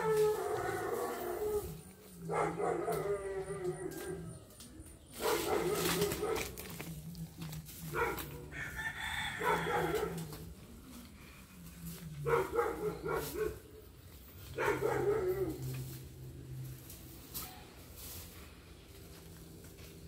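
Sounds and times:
rooster crowing: 8.4 - 10.4.

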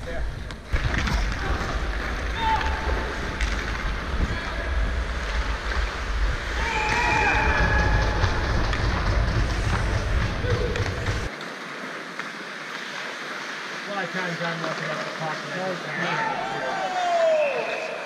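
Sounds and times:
arena noise: 0.0 - 12.4, 13.0 - 18.0
skates on ice: 0.1 - 15.9.

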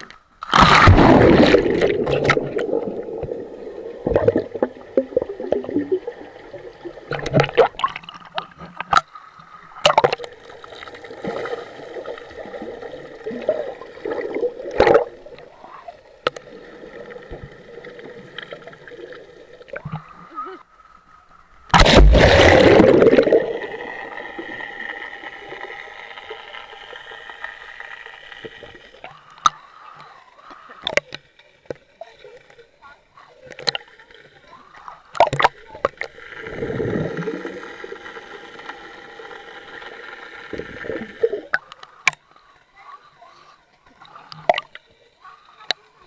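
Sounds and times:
faint hum: 0.0 - 46.0
underwater gurgling and bubbling: 0.4 - 20.6, 21.8 - 29.6, 33.6 - 42.1.

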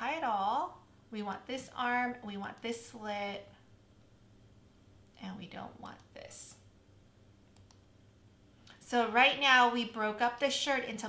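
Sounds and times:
faint computer mouse clicks: 7.5 - 7.9.

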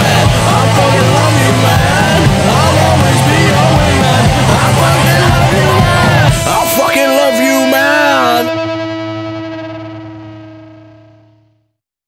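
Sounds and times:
distorted electric guitar chord: 0.0 - 11.8.

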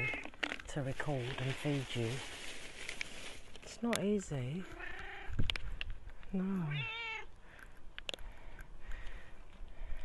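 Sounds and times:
cat meowing: 4.7 - 5.4, 6.7 - 7.3.

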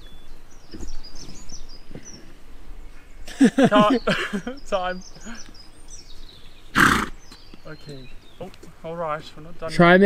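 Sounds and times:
faint birdsong: 0.0 - 10.0
pony snorting: 6.7 - 7.2.

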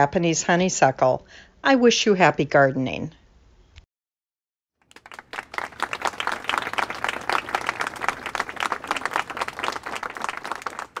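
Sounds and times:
audience applauding: 4.8 - 11.0.

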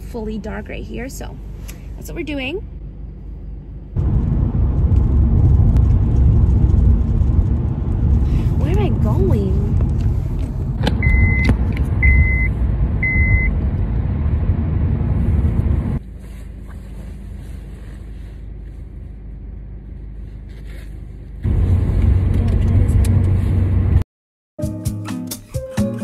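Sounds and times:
car cabin road rumble: 0.0 - 24.0.

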